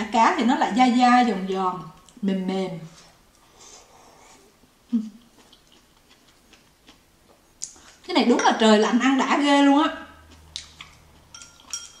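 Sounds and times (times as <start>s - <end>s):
wet chewing clicks: 5.2s - 7.9s, 10.2s - 12.0s.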